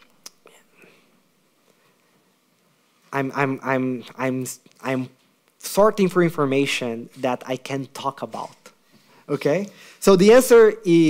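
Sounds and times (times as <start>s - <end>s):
mouth click: 0.0s - 0.5s.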